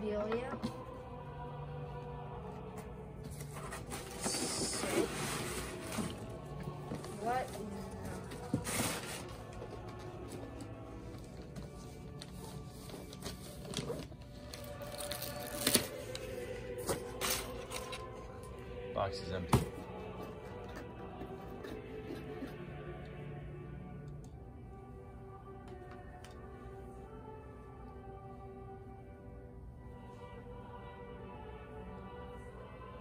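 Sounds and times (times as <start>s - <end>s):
soft background music: 0.0s - 33.0s.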